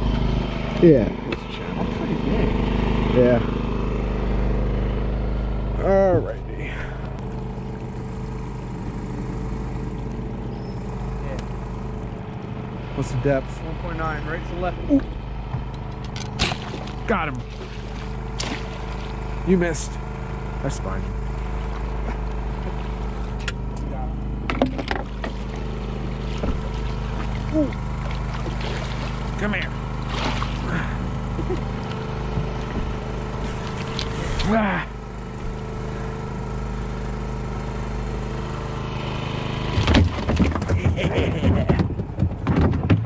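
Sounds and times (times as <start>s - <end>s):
small boat engine humming: 0.0s - 43.0s
sharp knocks and rattles: 24.4s - 30.6s, 39.7s - 43.0s.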